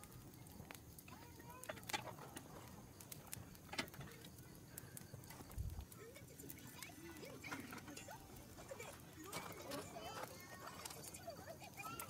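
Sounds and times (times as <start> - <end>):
faint voice: 5.8 - 12.0.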